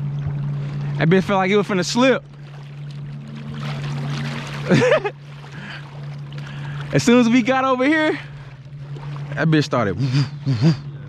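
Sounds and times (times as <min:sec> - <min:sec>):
water sloshing and splashing: 0:00.0 - 0:10.4
steady low hum: 0:00.0 - 0:11.0.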